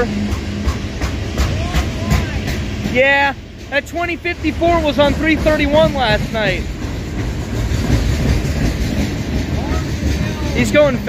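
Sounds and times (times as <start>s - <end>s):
freight train rumbling past: 0.0s - 11.0s.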